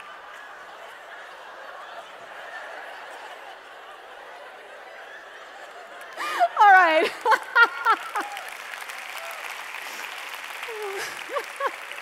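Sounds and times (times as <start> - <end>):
audience applause and laughter: 0.0 - 12.0
woman laughing into microphone: 10.7 - 12.0.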